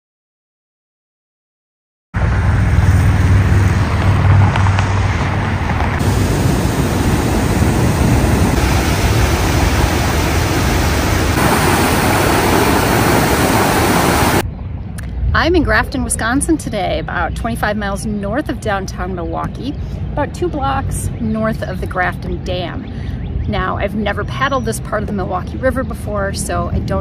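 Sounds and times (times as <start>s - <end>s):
water rushing over spillway: 6.0s - 14.4s.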